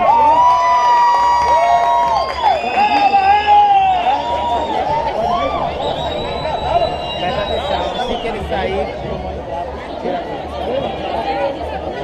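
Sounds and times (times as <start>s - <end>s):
crowd cheering: 0.0s - 9.0s.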